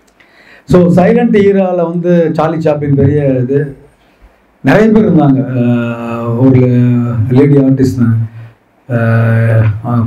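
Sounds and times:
man chanting: 0:08.9 - 0:10.0.

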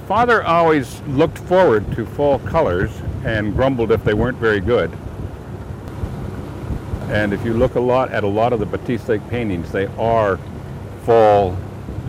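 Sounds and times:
small boat motor droning: 0:00.0 - 0:12.0
wind buffeting microphone: 0:00.0 - 0:12.0.

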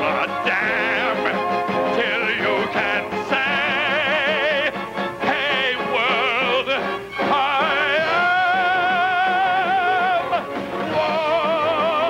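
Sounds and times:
instrumental accompaniment: 0:00.0 - 0:12.0
man singing show tune: 0:00.0 - 0:12.0.

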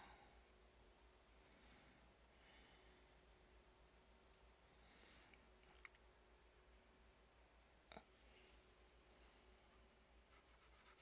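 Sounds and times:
paintbrush rubbing on palette: 0:00.0 - 0:08.3, 0:09.6 - 0:11.0.

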